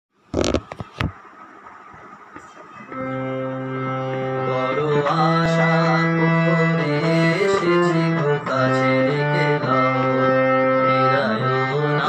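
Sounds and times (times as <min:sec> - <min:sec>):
phone being handled: 0:00.4 - 0:01.2
instrumental held note: 0:02.8 - 0:04.7.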